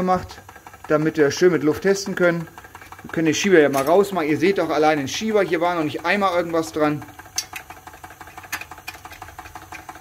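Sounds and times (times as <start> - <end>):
model steam engine ticking: 0.0 - 10.0.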